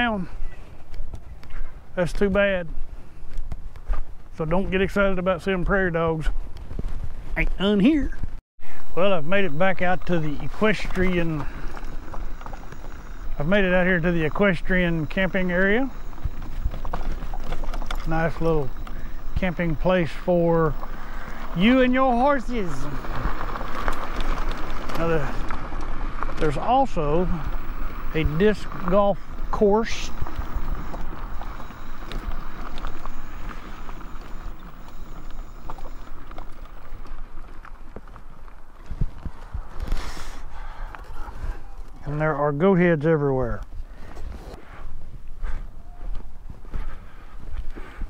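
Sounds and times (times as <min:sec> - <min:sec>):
wind rumbling on microphone: 0:08.2 - 0:40.0
tyres rolling over gravel: 0:08.6 - 0:39.1
stones knocking under wheels: 0:08.8 - 0:38.5.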